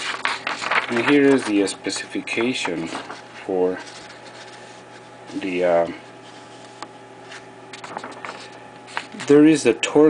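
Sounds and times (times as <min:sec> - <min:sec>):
paper rustling and crinkling: 0:00.0 - 0:09.6
steady low hum: 0:00.0 - 0:10.0.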